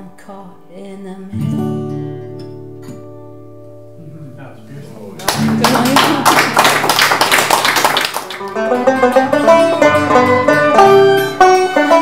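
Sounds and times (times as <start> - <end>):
plucked string instrument: 1.3 - 4.2, 8.3 - 12.0.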